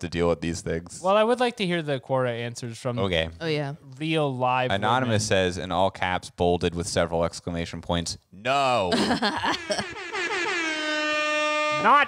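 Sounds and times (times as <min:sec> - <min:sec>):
sliding horn-like tone: 0:09.8 - 0:12.0.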